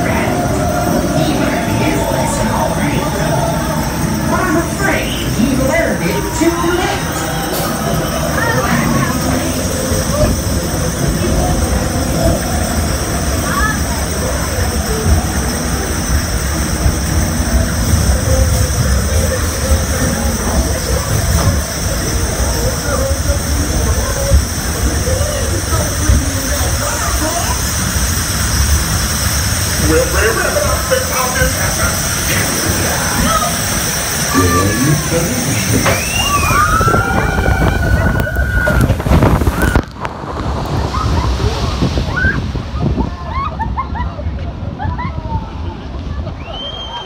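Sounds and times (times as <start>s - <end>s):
chain lift rumble and rattle: 0.0s - 39.8s.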